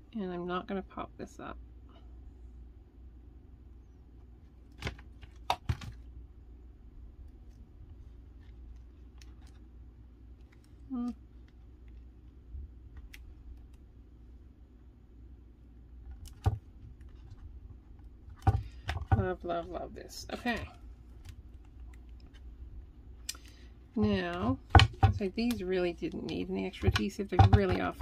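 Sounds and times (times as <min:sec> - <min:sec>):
low steady hum: 0:00.0 - 0:28.0
sharp clicks and taps: 0:24.2 - 0:28.0.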